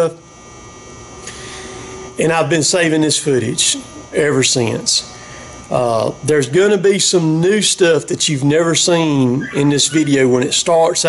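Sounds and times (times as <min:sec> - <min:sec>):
steady electrical hum: 0:00.0 - 0:11.0
soft breath: 0:01.2 - 0:02.0
man talking: 0:02.2 - 0:11.0.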